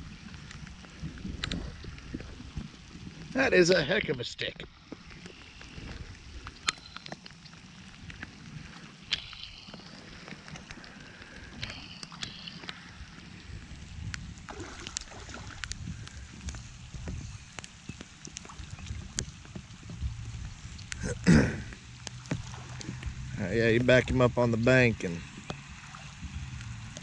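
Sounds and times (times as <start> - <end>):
wind rumble on microphone: 0.0 - 3.9, 5.0 - 7.0, 12.9 - 27.0
fish splashing at surface: 14.5 - 15.7, 22.1 - 23.3.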